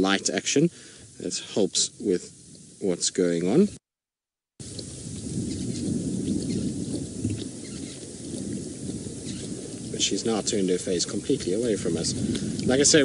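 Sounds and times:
lioness lapping water: 4.6s - 13.0s
steady low rumble: 4.6s - 13.0s.

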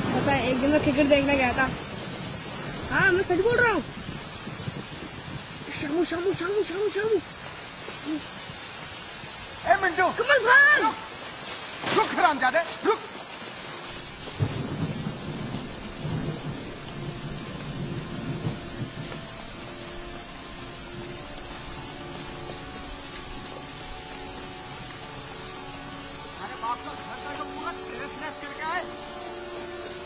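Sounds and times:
low thunder rumble: 0.0s - 9.6s, 13.9s - 26.4s
steady rain: 0.0s - 30.0s
person's voice: 2.8s - 3.9s, 5.6s - 7.3s, 9.6s - 11.1s, 11.8s - 13.2s, 26.3s - 29.0s.

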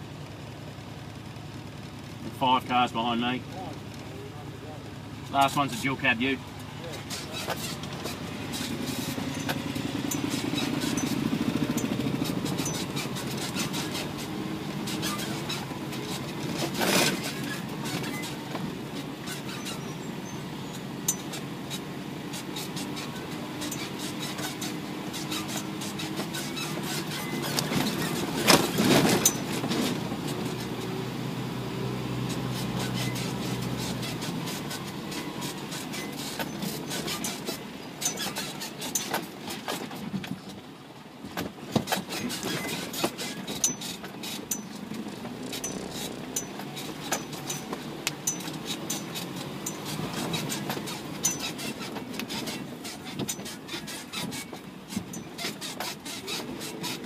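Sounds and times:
diesel truck engine running: 0.0s - 57.0s
truck rattling and knocking: 0.0s - 57.0s
truck jolts: 4.6s - 57.0s.

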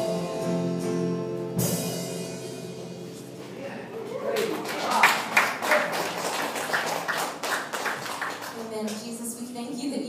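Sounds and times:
congregation applauding: 4.2s - 9.0s.

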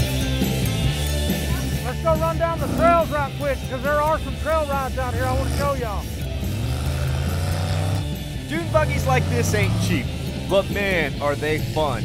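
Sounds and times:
background music: 0.0s - 12.0s
dune buggy engine running: 0.0s - 12.0s.

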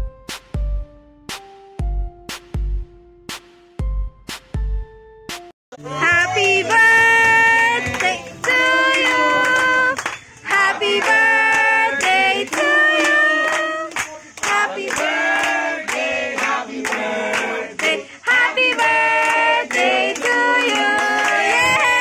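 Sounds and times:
hands clapping in a beat: 2.3s - 2.5s, 6.1s - 22.0s.

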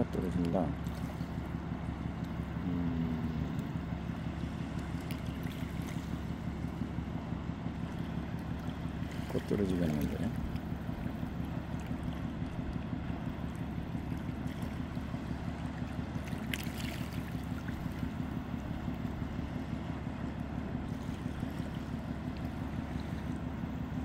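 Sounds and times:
low engine-like drone: 0.0s - 24.0s.

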